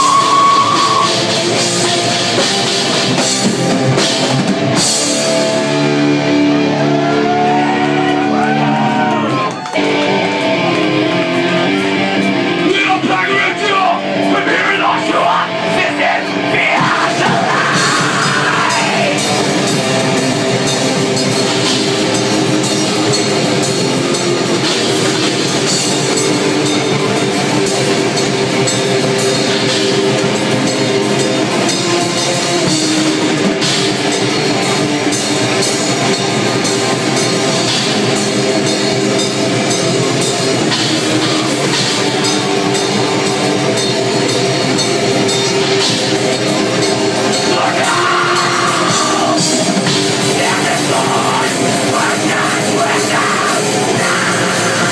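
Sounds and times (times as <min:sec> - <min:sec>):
distorted electric guitars: 0:00.0 - 0:54.9
drum kit with cymbal hits: 0:00.0 - 0:54.9
live metal band playing: 0:00.0 - 0:54.9.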